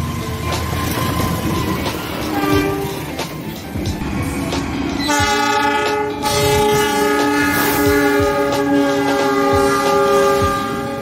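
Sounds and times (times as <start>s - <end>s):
train wheels rumbling on rails: 0.0s - 11.0s
locomotive air horn blast: 2.3s - 3.1s, 5.0s - 11.0s.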